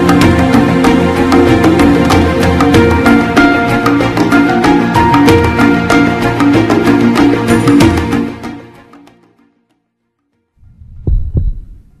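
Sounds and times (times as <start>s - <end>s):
deep thumps: 10.7s - 12.0s.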